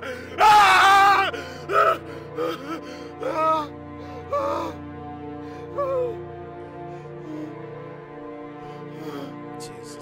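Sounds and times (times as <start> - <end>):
anguished cries and gasps: 0.0 - 7.9
low music drone: 0.0 - 10.0
man screaming: 0.2 - 2.0.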